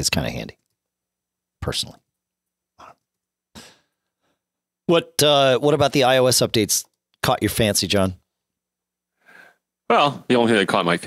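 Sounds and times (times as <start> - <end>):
puff of breath: 3.6 - 4.0, 9.2 - 9.6.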